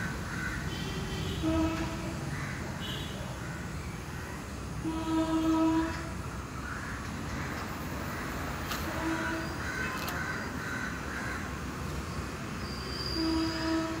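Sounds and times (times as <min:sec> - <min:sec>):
traffic hum: 0:00.0 - 0:14.0
vehicle horn blasts: 0:00.7 - 0:02.1, 0:04.8 - 0:06.1, 0:08.9 - 0:09.6, 0:13.0 - 0:14.0.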